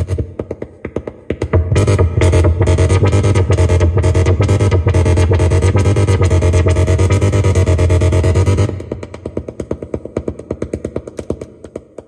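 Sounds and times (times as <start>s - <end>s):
muffled synthesizer notes: 1.3s - 10.6s.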